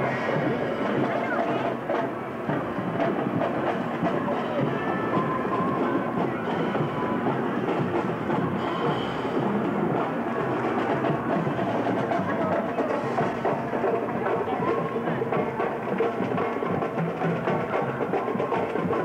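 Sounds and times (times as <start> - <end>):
marching band drums: 0.0 - 19.0.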